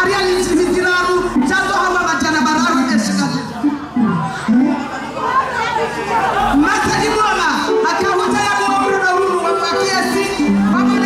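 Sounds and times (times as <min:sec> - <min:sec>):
woman speaking over a microphone: 0:00.0 - 0:04.8, 0:06.4 - 0:11.0
crowd chatter: 0:00.0 - 0:11.0.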